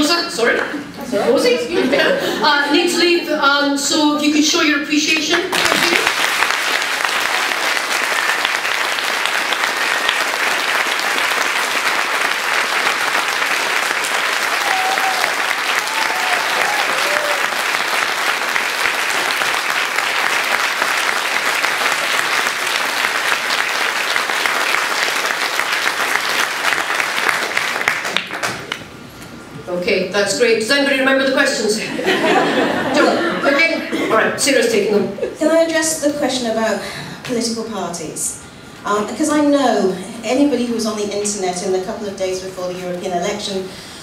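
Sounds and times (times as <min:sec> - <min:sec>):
audience applauding: 0:05.5 - 0:28.9.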